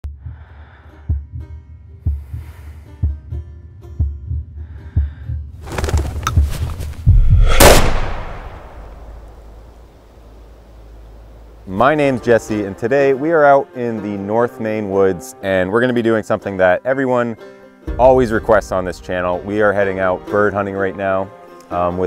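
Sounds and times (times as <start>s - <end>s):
low heartbeat-like thump: 1.1s - 3.4s, 4.0s - 8.7s
swelling riser: 7.0s - 9.3s
loud hit and whoosh: 7.0s - 9.4s.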